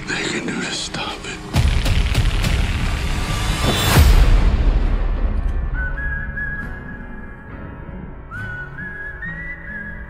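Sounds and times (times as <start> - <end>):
whistled tune: 5.4 - 10.0.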